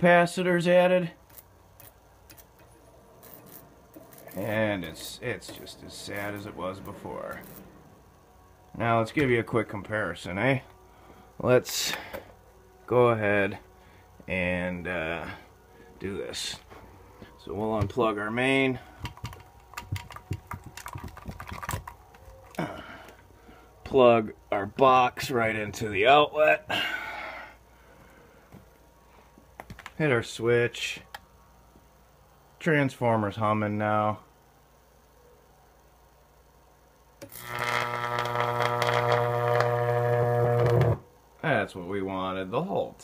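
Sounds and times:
electrical arc buzzing and crackling: 0.0 - 10.7, 37.2 - 41.1
transformer humming: 2.6 - 12.2
plug and cord clicking and rattling: 19.0 - 22.6.

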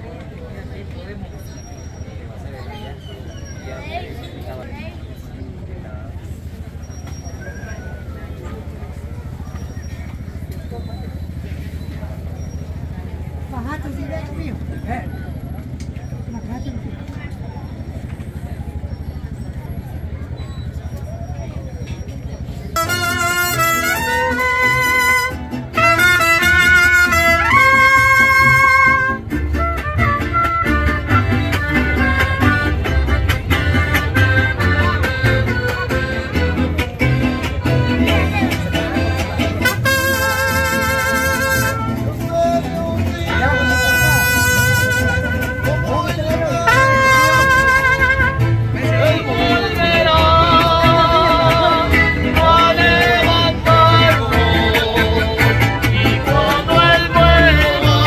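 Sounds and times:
strummed acoustic guitars: 21.9 - 58.0
trumpets with vibrato: 22.8 - 53.1
bass line: 22.8 - 58.0.

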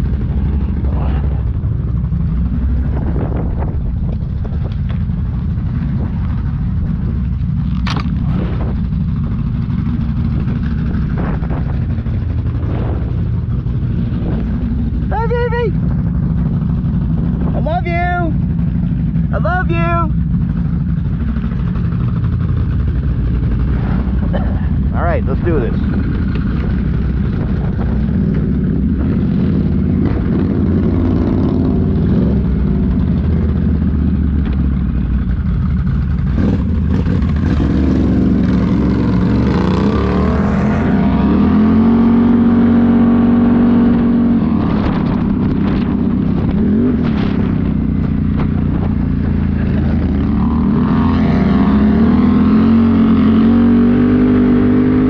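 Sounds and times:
atv engines idling: 0.0 - 52.7
atv engine revving: 0.0 - 55.0.

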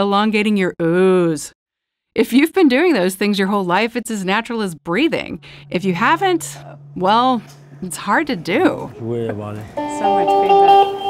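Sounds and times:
electric saz playing sustained notes: 4.9 - 11.0.

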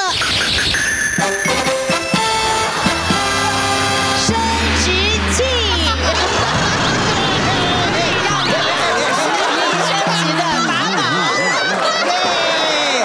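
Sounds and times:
bright musical fanfare: 1.2 - 9.6
deep held bass note: 1.5 - 9.4.

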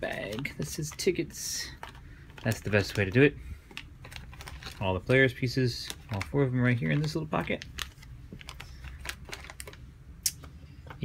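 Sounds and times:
plastic bag crinkling: 0.0 - 9.9.

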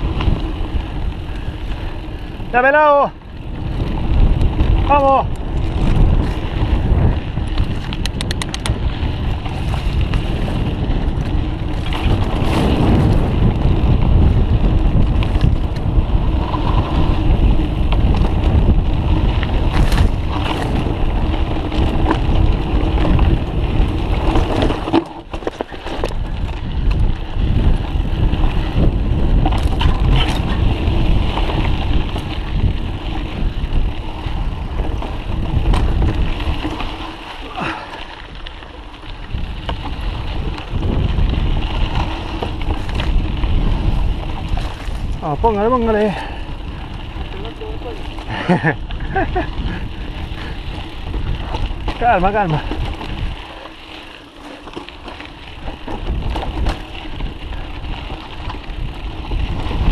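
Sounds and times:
bike rattling and knocking: 0.0 - 59.9
bike tyre noise: 0.0 - 59.9
wind noise on microphone: 0.0 - 59.9.

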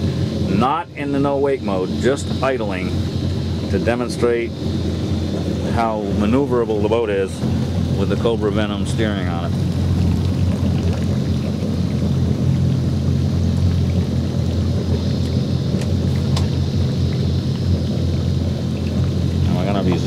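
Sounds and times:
boat engines idling: 0.0 - 20.0
wind and water rushing: 0.0 - 20.0.

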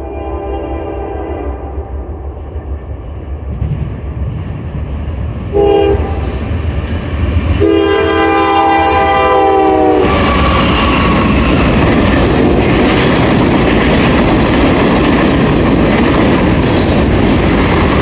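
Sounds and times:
train air horn blasts: 0.0 - 2.0, 5.5 - 6.3, 7.6 - 11.5
locomotive rumble: 0.0 - 18.0.

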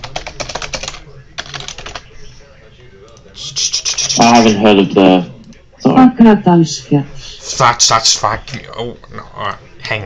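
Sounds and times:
computer keyboard typing: 0.0 - 2.1.

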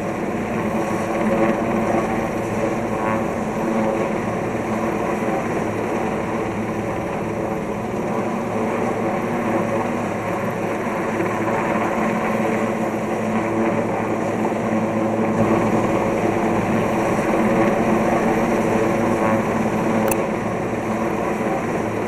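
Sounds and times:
helicopter hovering overhead: 0.0 - 22.0.

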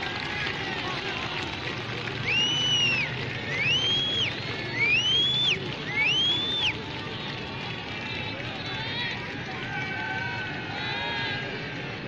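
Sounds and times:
crowd noise: 0.0 - 12.0
rising whistle-like tones: 2.2 - 6.7.

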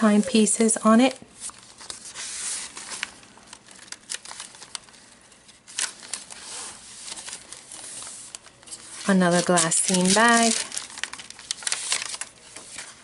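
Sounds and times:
paper and card rustling: 0.0 - 13.0.

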